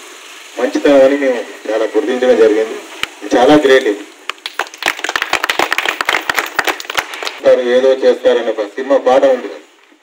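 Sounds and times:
audience clapping: 4.3s - 7.4s.

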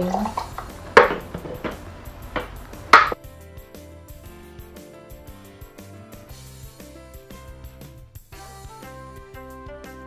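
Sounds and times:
plastic blender jar clunking: 0.1s - 3.1s.

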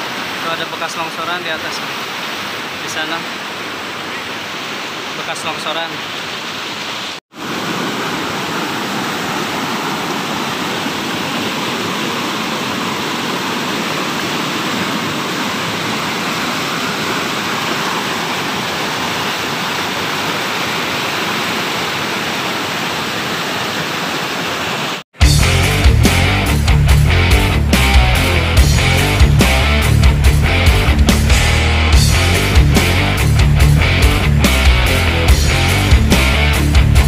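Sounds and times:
river rushing over boulders: 0.0s - 25.0s.

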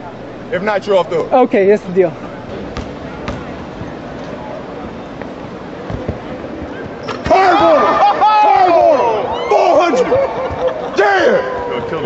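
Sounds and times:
basketball bouncing: 2.5s - 4.0s, 5.8s - 7.8s
men shouting and whooping: 7.2s - 12.0s.

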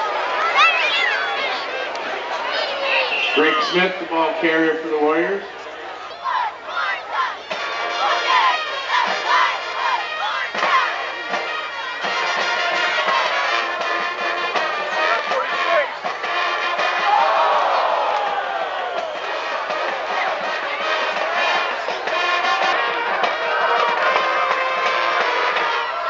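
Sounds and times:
football crowd shouting and cheering: 0.0s - 26.0s.

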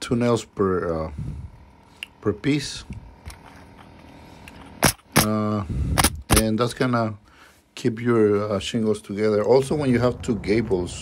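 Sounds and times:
nail gun firing: 4.8s - 5.4s, 6.0s - 6.6s.

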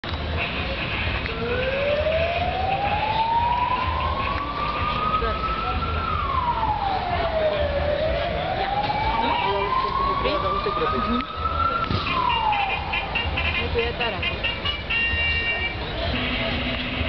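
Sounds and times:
siren wailing: 1.3s - 13.3s.

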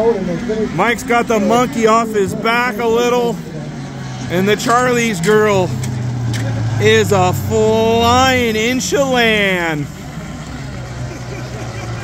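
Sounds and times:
faint voices: 0.0s - 12.0s
model boat engines droning: 0.0s - 12.0s.

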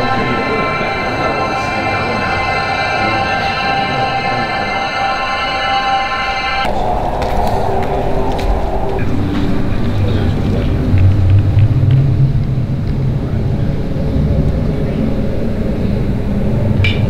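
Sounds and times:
loud low rumble: 0.0s - 17.0s.

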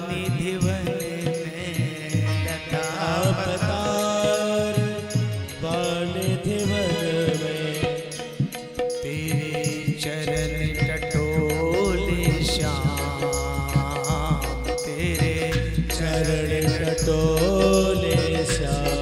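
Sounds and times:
instrumental accompaniment: 0.0s - 19.0s
man singing devotional song: 0.0s - 19.0s.

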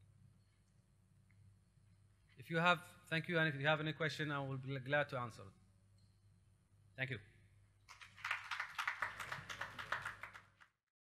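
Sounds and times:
small audience clapping: 7.9s - 10.8s.

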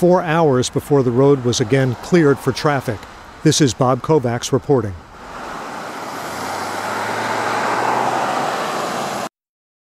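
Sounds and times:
road traffic: 0.0s - 9.3s
low engine hum: 0.5s - 9.3s.

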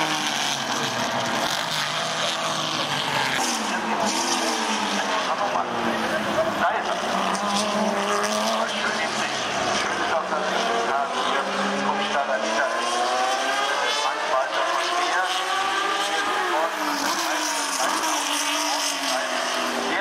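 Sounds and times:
racing car engines accelerating: 0.0s - 20.0s.

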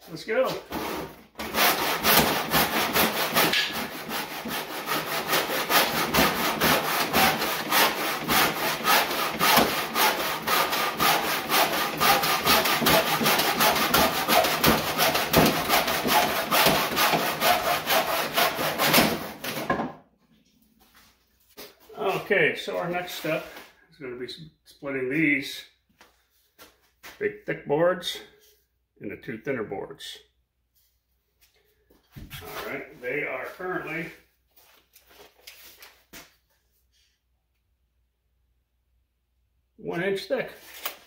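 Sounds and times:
hand saw cutting wood: 0.1s - 19.8s.

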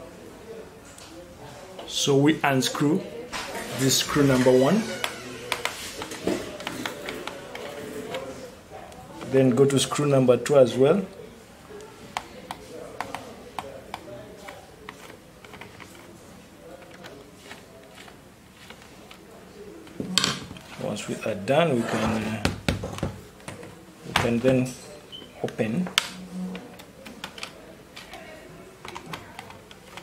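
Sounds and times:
laptop handling noise: 3.3s - 9.4s, 11.8s - 20.9s, 25.4s - 30.0s
screwdriver knocking on wooden desk: 22.4s - 23.2s.

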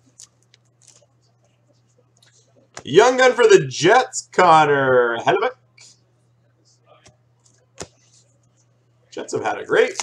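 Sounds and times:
faint low hum: 0.0s - 10.0s
trading cards handled: 9.8s - 10.0s.

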